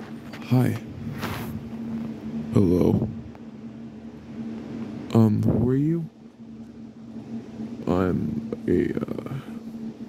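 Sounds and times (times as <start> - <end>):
constant tone: 0.0 - 10.0
steady low hum: 0.0 - 10.0.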